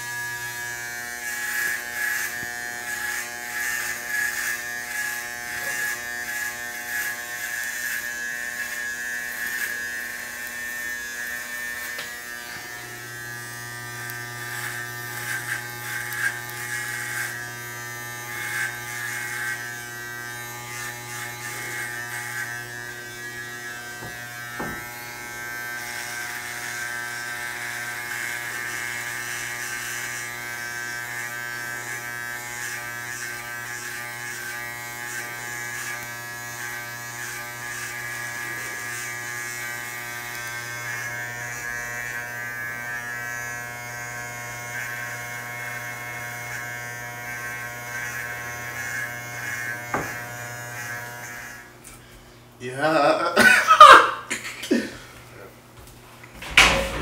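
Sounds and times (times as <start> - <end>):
electric hair clippers buzzing: 0.0 - 52.1, 52.8 - 54.9, 56.4 - 57.0.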